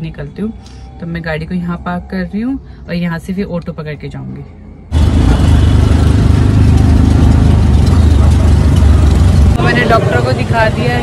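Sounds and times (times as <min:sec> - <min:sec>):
auto rickshaw engine droning: 0:00.0 - 0:11.0
road noise: 0:00.0 - 0:11.0.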